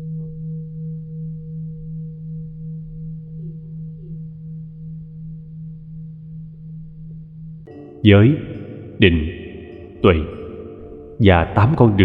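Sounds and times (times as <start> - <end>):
low sustained tone: 0.0 - 12.0.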